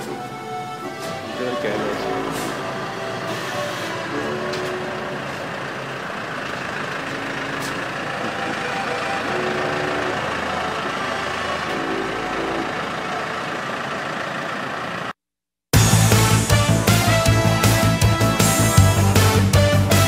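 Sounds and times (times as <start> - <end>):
truck engine rumbling: 0.0 - 15.2, 15.8 - 20.0.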